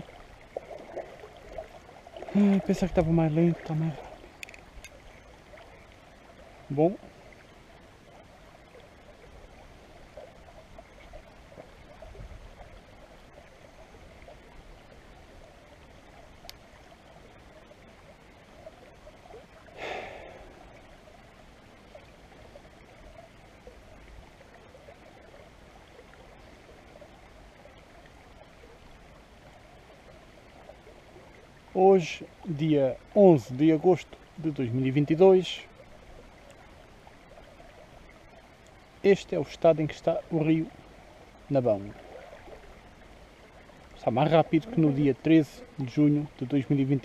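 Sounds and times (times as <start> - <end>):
shallow river water running: 0.0 - 47.0.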